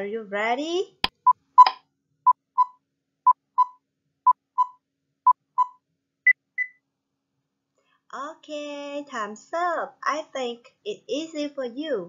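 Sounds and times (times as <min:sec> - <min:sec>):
short beeps in pairs: 0:01.2 - 0:06.8.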